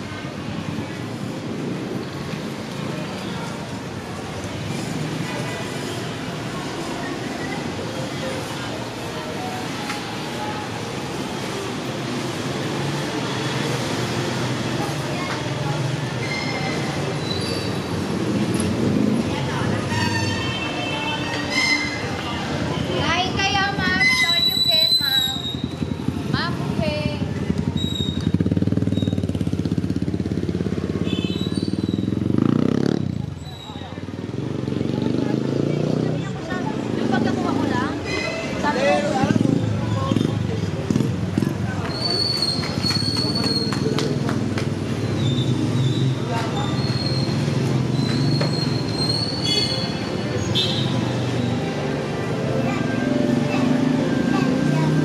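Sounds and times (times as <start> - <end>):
motorbike engines: 0.0 - 55.0
traffic rumble: 0.0 - 55.0
people talking: 2.7 - 12.2, 13.0 - 17.6, 18.9 - 27.7, 33.0 - 45.0, 51.5 - 55.0.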